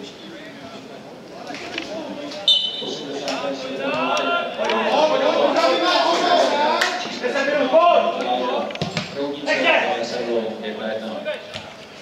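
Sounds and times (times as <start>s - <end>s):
people calling out and talking: 0.0s - 11.6s.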